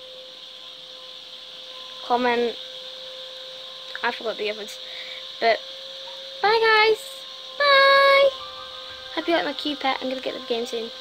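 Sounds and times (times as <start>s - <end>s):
faint constant hum: 0.0s - 11.0s
steady background hiss: 0.0s - 11.0s.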